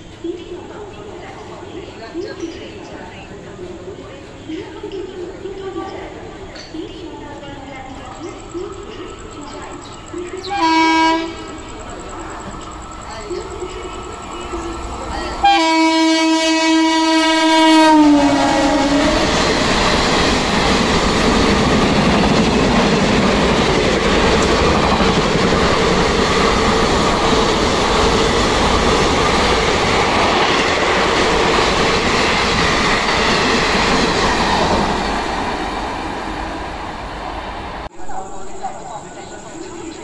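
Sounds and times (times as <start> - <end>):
train coaches clattering over rails: 0.0 - 16.7, 17.7 - 37.5
train horn blast: 10.5 - 11.5, 15.4 - 19.4.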